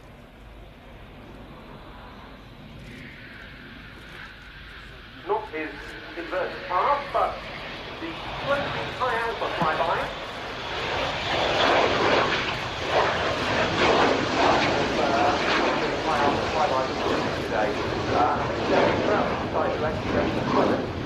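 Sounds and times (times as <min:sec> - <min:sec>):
jet engines flying past: 0:00.0 - 0:21.0.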